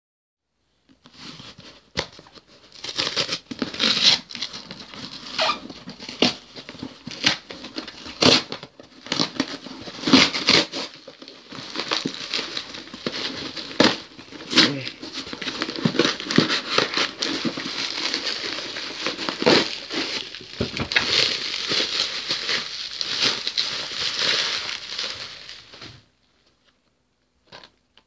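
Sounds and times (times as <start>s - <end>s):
cardboard tearing and rustling: 1.0s - 26.1s
packing tape ripping: 2.8s - 25.7s.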